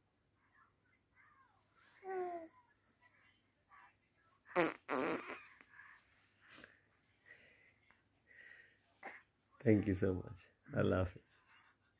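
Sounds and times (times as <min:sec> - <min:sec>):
lips blowing raspberry: 0:04.6 - 0:05.4.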